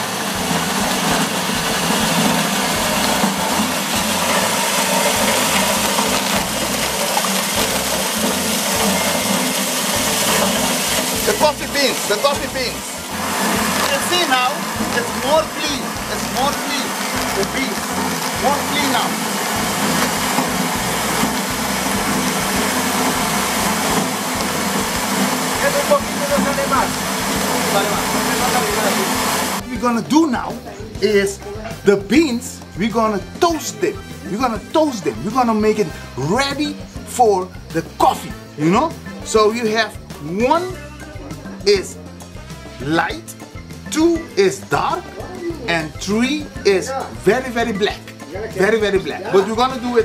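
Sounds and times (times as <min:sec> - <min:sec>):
beans pouring from chute: 0:00.0 - 0:31.3, 0:32.0 - 0:40.8
coffee huller motor whirring: 0:00.0 - 0:43.1.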